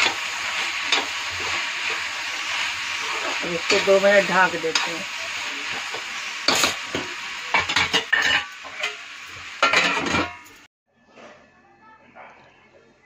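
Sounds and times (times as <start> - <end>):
vegetables sizzling in a pan: 0.0 - 10.7
metal spatula clinking on pan: 7.6 - 9.0.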